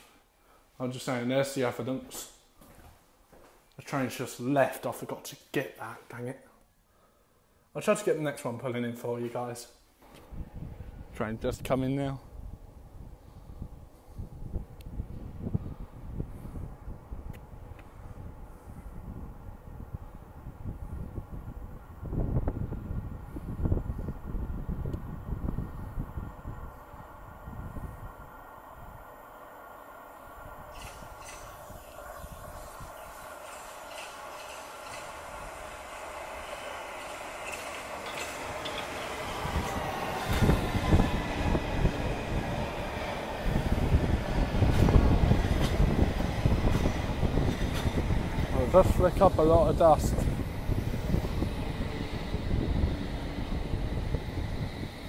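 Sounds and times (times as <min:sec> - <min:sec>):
electric train arriving: 0:12.2 - 0:55.0.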